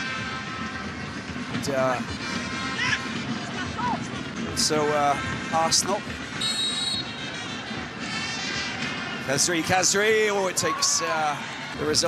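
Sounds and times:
fans' horns: 0.0 - 3.8, 6.3 - 9.5
stadium crowd noise: 0.0 - 12.0.

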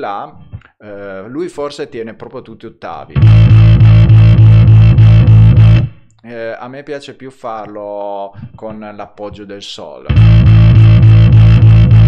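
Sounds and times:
electric bass repeated notes: 3.2 - 6.0, 10.1 - 12.0.

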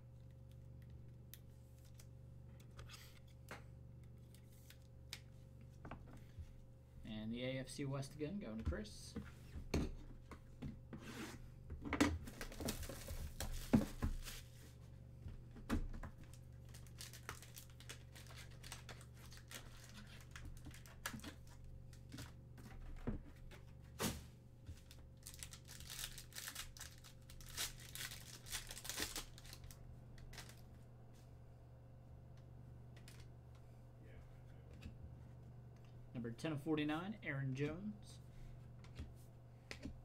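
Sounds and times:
low electrical hum: 0.0 - 40.0
card packaging crinkling: 12.3 - 14.5, 16.2 - 22.3, 24.8 - 30.6.

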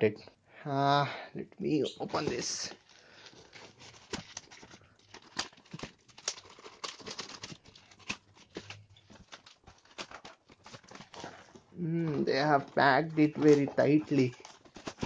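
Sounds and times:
plastic packaging crinkling: 1.9 - 15.0.

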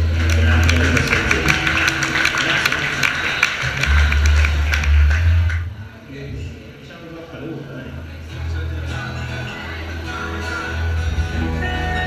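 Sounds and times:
rockabilly trio playing: 0.0 - 5.6, 8.4 - 12.0.

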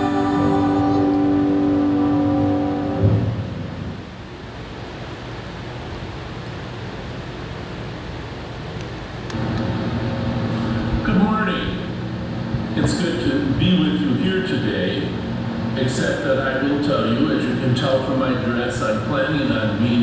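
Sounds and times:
hymn chord sung: 0.0 - 4.0
low hum: 0.0 - 20.0
room hum and hiss: 0.0 - 20.0.

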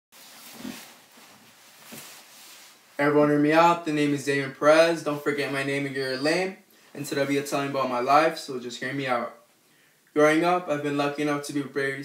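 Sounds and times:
nylon jacket rustling: 0.1 - 3.0
steady hiss: 0.2 - 12.0.

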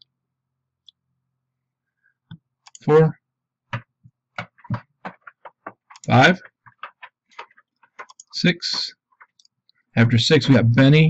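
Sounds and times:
short clicks and taps: 2.3 - 2.9, 3.7 - 10.6.

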